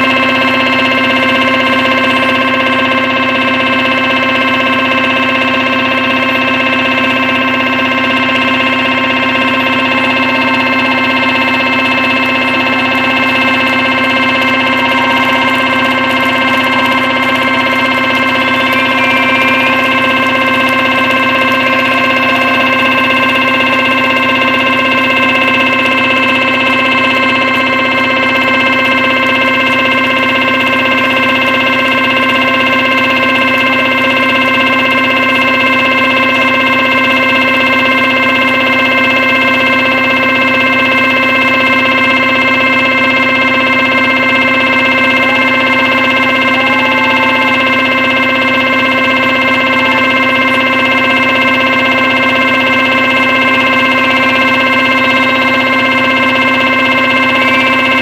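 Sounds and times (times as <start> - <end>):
rock band droning chord: 8.3 - 28.4.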